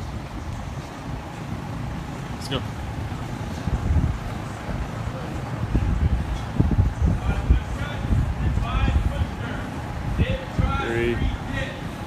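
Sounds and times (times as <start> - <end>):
drum fan rumbling: 0.0 - 12.0.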